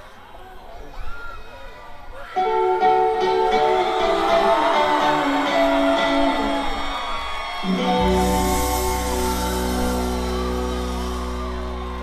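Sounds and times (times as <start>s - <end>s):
electric guitar chords: 2.4s - 7.0s, 7.6s - 12.0s
live rock band playing: 7.6s - 12.0s.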